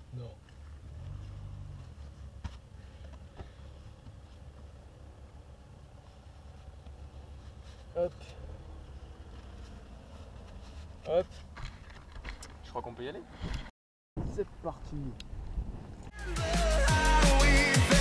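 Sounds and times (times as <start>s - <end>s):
gear rustling: 0.4s - 12.7s.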